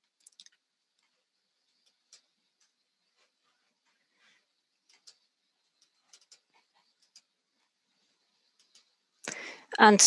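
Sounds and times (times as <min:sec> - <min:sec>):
faint computer clicks: 0:00.0 - 0:03.3, 0:04.8 - 0:07.4, 0:08.4 - 0:09.5.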